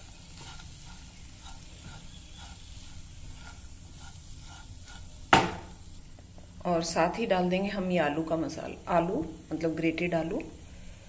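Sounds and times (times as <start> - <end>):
spatula scraping a pan: 0.0 - 5.9
sharp knock: 5.3 - 5.7.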